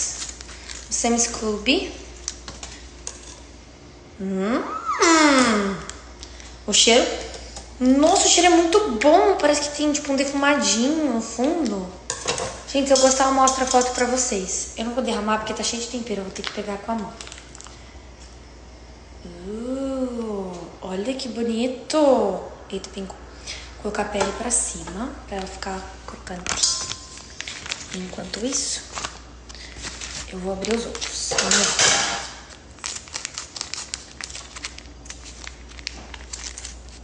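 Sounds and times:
plastic pouch crinkling: 0.0s - 1.4s, 26.4s - 31.6s, 32.5s - 37.0s
soft rustling and squishing: 25.4s - 31.5s, 32.5s - 37.0s.

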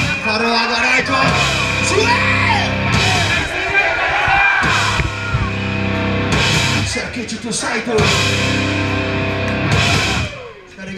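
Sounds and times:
bass guitar: 0.0s - 3.5s, 4.6s - 10.5s
distorted electric guitar: 0.0s - 3.5s, 4.6s - 10.6s
voices yelling: 0.0s - 6.0s, 10.0s - 10.9s
drums: 0.0s - 10.9s.

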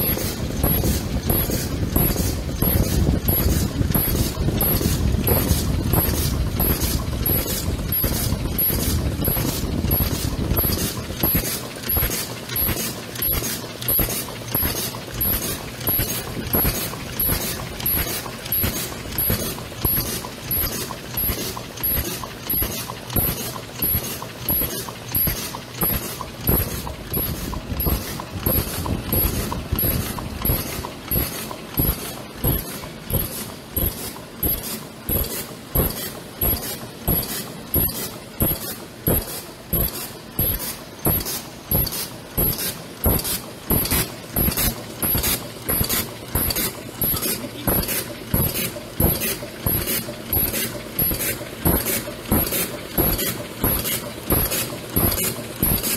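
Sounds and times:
machine mechanism cycling: 0.0s - 55.9s.

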